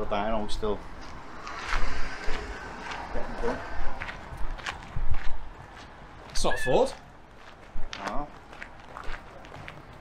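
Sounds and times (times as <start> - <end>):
wind rumble on microphone: 0.5 - 6.4
footsteps on gravel: 0.9 - 10.0.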